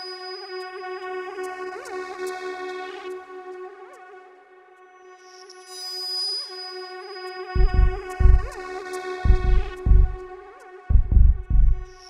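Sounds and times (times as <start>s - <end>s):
deep bass thumps: 7.6s - 8.6s, 9.3s - 10.2s, 10.9s - 11.9s.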